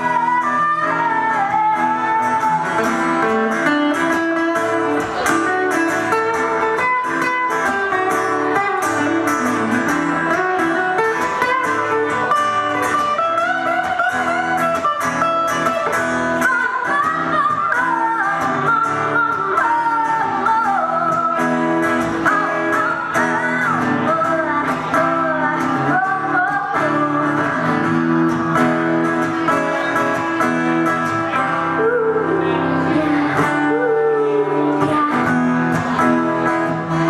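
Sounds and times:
acoustic guitars strumming: 0:00.0 - 0:37.0
woman singing: 0:00.0 - 0:37.0.

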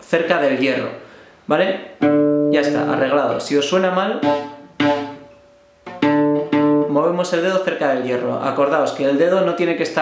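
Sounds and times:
classical guitar notes plucked: 0:02.0 - 0:03.3, 0:04.2 - 0:07.0.

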